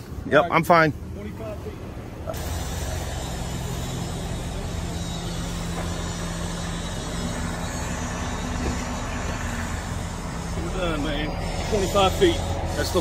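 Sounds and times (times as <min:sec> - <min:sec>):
car engine idling: 0:00.9 - 0:13.0.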